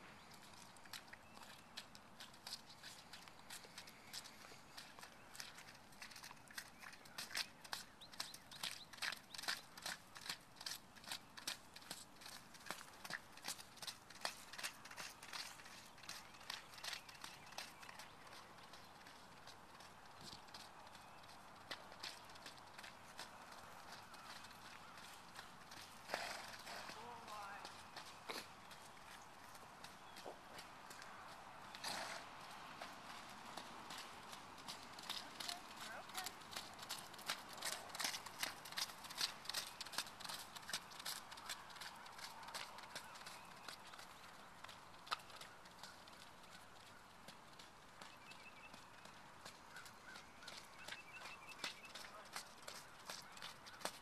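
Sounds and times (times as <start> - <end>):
horse hoofbeats cantering: 0.1 - 54.0.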